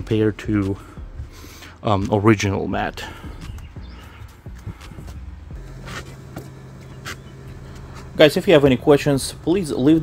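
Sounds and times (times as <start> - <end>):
low steady hum: 4.0 - 10.0
hand rubbing rubber mat: 4.6 - 8.3.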